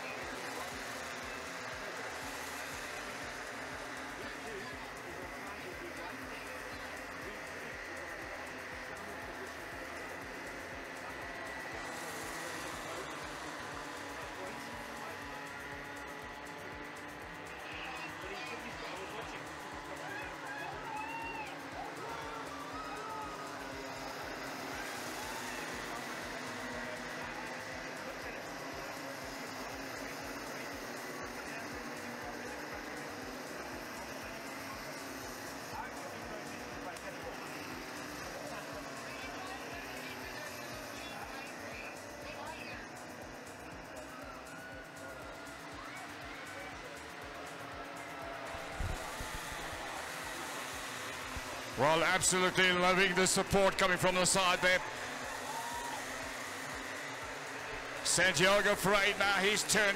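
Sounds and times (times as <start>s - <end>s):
kart engines buzzing: 0.0s - 59.9s.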